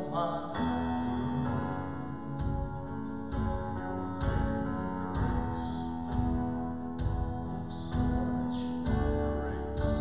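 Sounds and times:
piano chords: 0.0 - 10.0
strummed guitar chords: 0.0 - 10.0
drum kit: 1.5 - 10.0.

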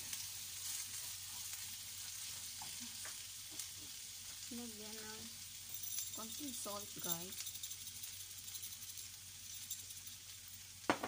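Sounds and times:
food sizzling in a pan: 0.0 - 11.0.

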